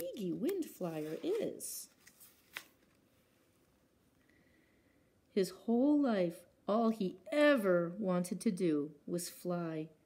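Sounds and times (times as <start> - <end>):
book pages turning: 0.0 - 3.3
paper snap: 2.0 - 3.0.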